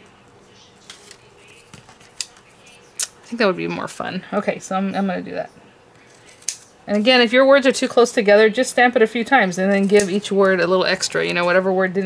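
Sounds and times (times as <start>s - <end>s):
cardstock and paper handling: 0.8s - 2.8s.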